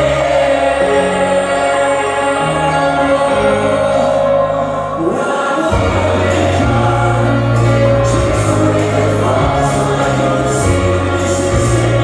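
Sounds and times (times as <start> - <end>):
live pop-rock band with piano: 0.0 - 12.0
person singing: 0.0 - 12.0.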